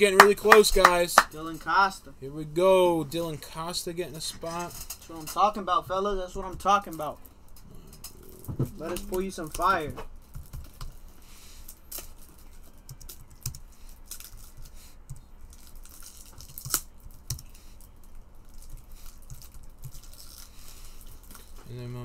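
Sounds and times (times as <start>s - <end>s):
typing on computer keyboard: 12.7s - 13.6s.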